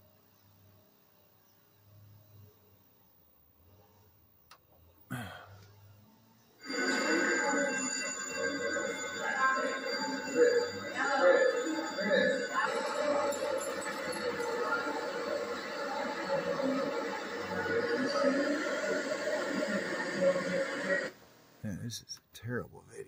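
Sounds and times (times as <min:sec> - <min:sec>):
thin steady high whine: 0:00.0 - 0:23.0
music from tv speaker: 0:06.6 - 0:21.2
indistinct voices: 0:06.6 - 0:23.0.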